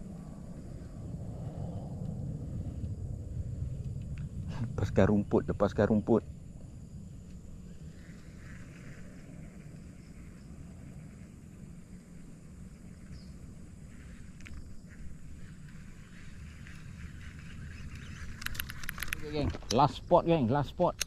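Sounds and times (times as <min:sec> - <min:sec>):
low rumble: 0:00.0 - 0:17.6
faint ticks: 0:01.9 - 0:03.0, 0:03.6 - 0:04.7, 0:12.9 - 0:19.8.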